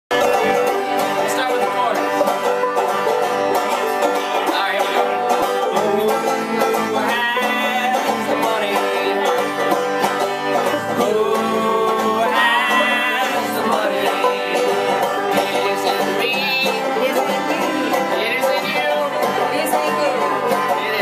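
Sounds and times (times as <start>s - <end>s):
banjo playing bluegrass tune: 0.1s - 21.0s.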